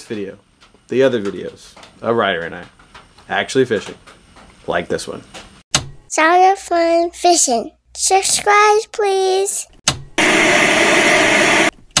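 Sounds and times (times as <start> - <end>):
loud static hiss: 10.2 - 11.7.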